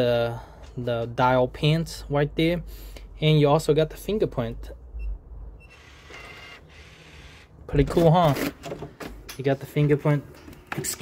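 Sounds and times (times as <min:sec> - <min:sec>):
lock motor whirring: 0:05.6 - 0:07.5.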